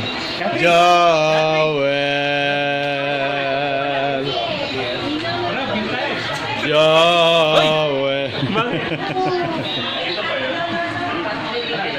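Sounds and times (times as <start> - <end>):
party chatter: 0.0 - 11.9.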